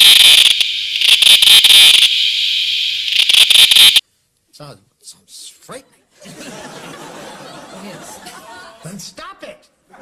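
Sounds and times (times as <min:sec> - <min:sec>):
cicada buzzing: 0:00.0 - 0:04.0.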